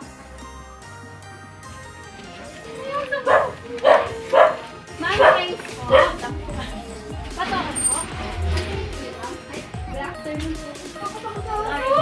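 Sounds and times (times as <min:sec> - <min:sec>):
background music: 0:00.0 - 0:12.0
dog barking: 0:03.1 - 0:06.3.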